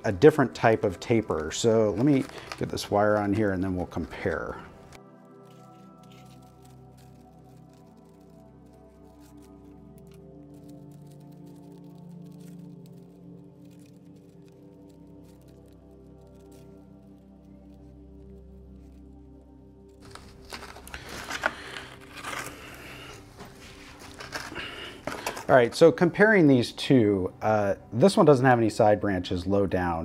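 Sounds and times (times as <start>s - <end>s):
ambient background music: 0.0s - 30.0s.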